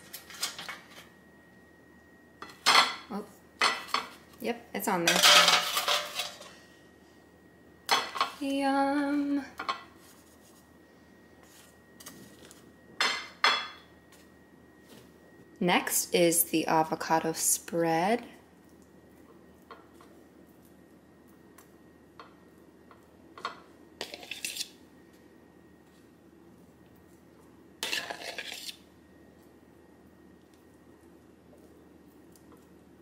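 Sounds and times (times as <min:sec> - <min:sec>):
kitchenware clinks: 0:05.1 - 0:06.5
fork scraping ceramic bowl: 0:24.0 - 0:24.8, 0:27.8 - 0:28.8.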